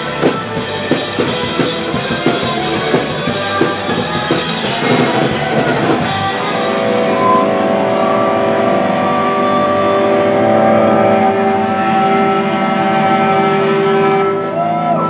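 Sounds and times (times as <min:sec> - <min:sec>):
electric guitars and bass drone: 0:00.0 - 0:15.0.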